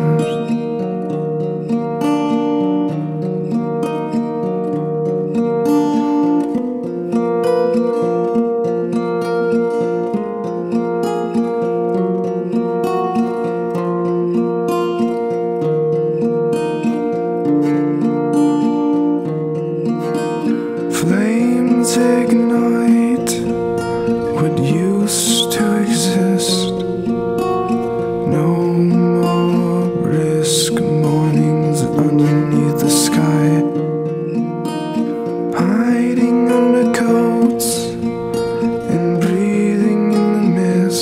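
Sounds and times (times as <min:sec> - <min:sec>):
acoustic guitar: 0:00.0 - 0:41.0.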